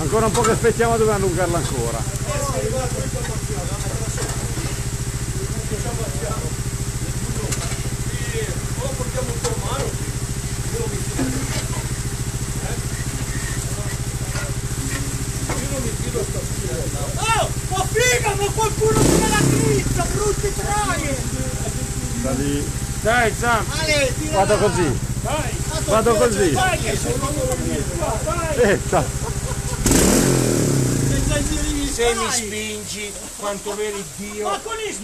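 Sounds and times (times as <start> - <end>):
motorcycle engine idling: 0.0 - 34.8
distant voices shouting: 0.0 - 35.0.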